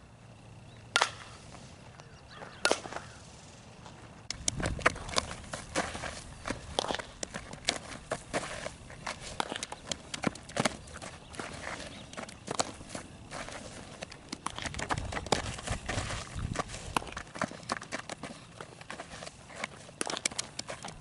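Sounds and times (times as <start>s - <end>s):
footsteps scuffing on dirt: 1.5s - 3.2s, 3.8s - 21.0s
balls into leather glove: 4.3s - 21.0s.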